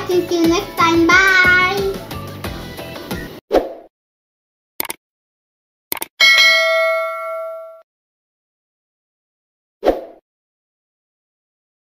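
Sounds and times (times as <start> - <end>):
mouse click sound effect: 5.9 - 6.1
bell ding: 6.2 - 7.8.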